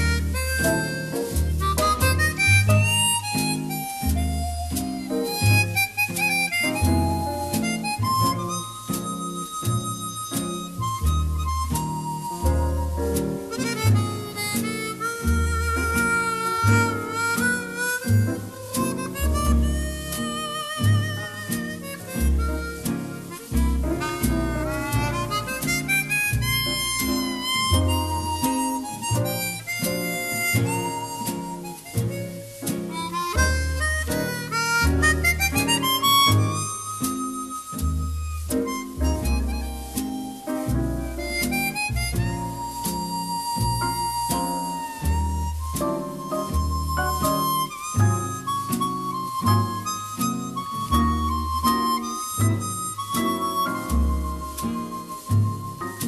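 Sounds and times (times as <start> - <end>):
chromatic harmonica melody: 0.0 - 56.0
double bass: 0.0 - 56.0
guitar: 0.0 - 56.0
piano: 0.0 - 56.0
drums: 50.9 - 56.0.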